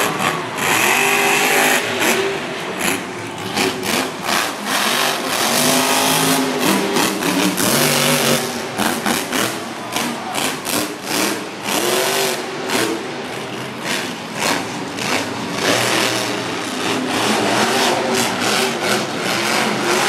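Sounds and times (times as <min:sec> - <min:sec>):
monster truck engine revving: 0:00.0 - 0:20.0.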